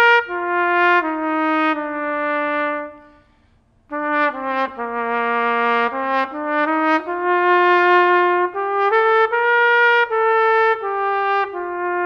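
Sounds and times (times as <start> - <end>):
solo trumpet melody: 0.0 - 12.0.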